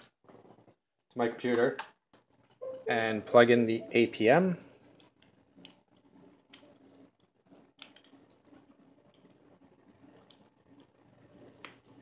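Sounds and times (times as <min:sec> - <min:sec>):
small handling noises: 0:04.0 - 0:12.0.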